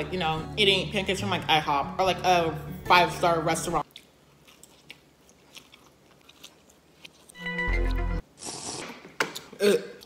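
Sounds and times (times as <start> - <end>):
faint chewing: 3.8 - 10.0.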